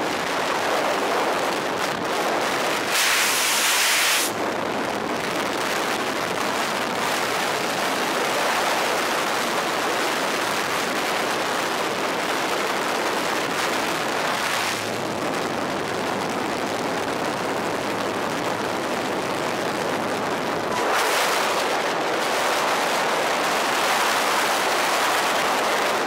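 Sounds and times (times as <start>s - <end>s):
aircraft engine hum: 11.8s - 26.0s.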